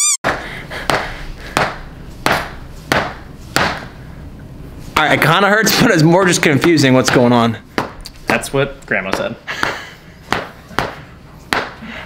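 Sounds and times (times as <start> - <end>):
mallet thudding on body: 1.6 - 3.9.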